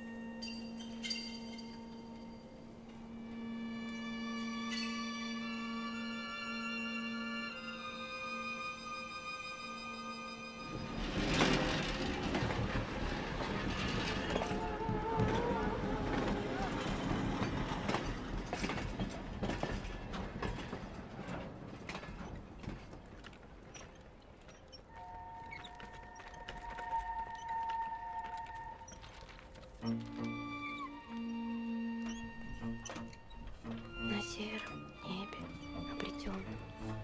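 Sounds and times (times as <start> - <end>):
passenger train rumble and clatter: 0.0 - 37.0
violin music: 2.0 - 11.1, 29.7 - 37.0.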